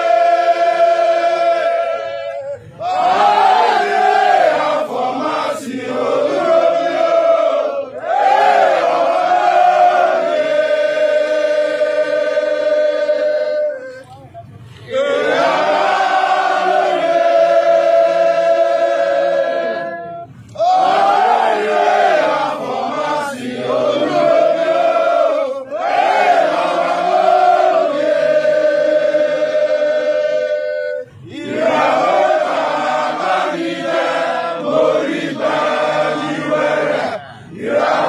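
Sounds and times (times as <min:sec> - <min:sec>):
group singing in chorus: 0:00.0 - 0:13.9, 0:14.8 - 0:38.0.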